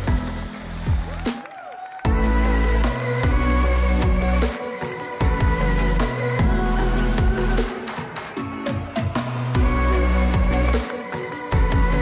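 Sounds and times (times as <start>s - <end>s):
electronic dance music: 0.0s - 12.0s
deep bass line: 2.1s - 4.5s, 5.2s - 7.7s, 9.6s - 10.8s, 11.6s - 12.0s.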